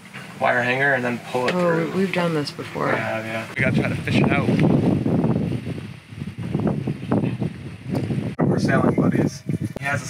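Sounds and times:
wind buffeting microphone: 2.0 - 10.0.

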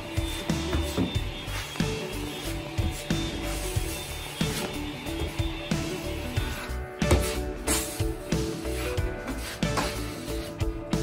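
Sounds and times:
background music with a beat: 0.0 - 11.0
putty knife scraping drywall: 6.2 - 10.7.

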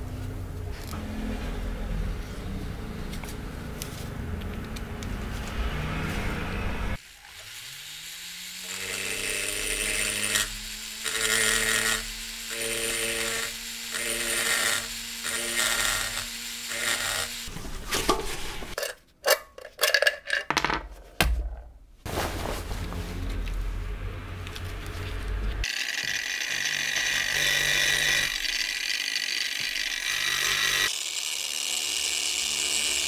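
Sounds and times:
rotary tool motor whine: 6.9 - 17.5, 25.6 - 33.0.

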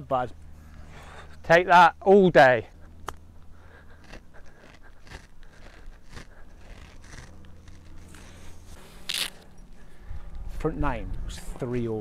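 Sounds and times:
brushing scrape: 3.7 - 9.8.

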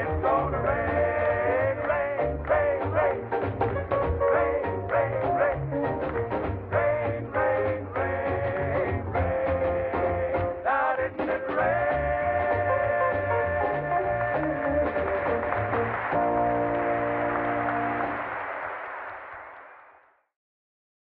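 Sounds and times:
male vocal quartet singing gospel: 0.0 - 5.9, 6.6 - 15.9.

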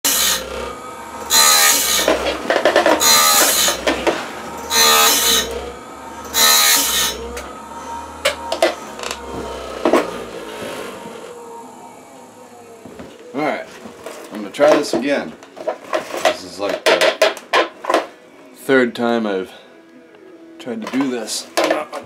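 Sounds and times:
grinding wheel on steel blade: 0.0 - 12.6.

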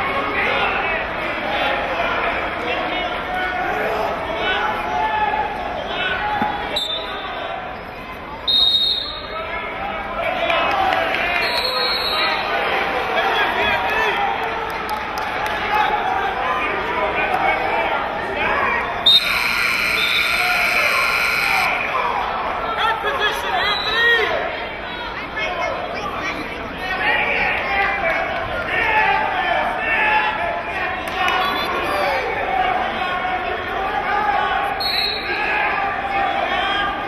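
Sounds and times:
crowd chatter: 0.0 - 37.0
electronic buzzer horn: 19.1 - 21.9.

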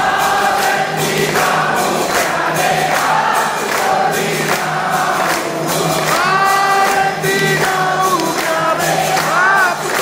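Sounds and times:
congregation singing a hymn: 0.0 - 10.0
regular percussive beat: 0.0 - 10.0.

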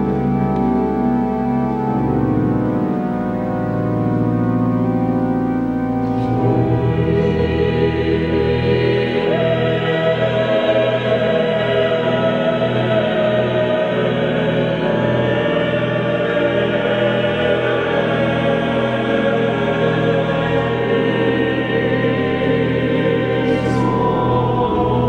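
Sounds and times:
choir singing sustained chords: 0.0 - 25.0
pipe organ: 0.0 - 25.0.

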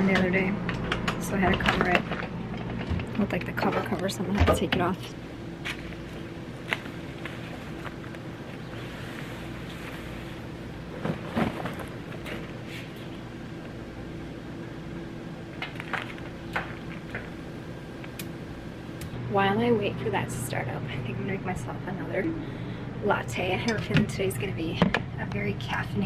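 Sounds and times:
low steady hum: 0.0 - 26.0.

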